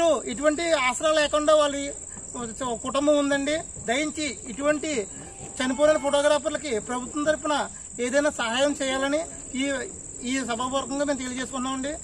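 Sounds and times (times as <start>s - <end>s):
crickets droning: 0.0s - 12.0s
man speaking: 0.0s - 12.0s.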